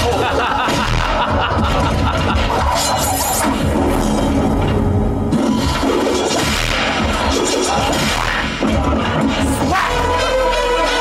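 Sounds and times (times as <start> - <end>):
background music: 0.0 - 11.0
sharp sound effect: 5.2 - 8.6.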